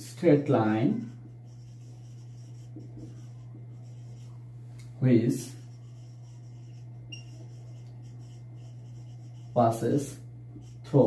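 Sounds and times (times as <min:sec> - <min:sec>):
steady low hum: 0:00.0 - 0:11.0
marker scratching on whiteboard: 0:00.3 - 0:04.4, 0:05.4 - 0:11.0.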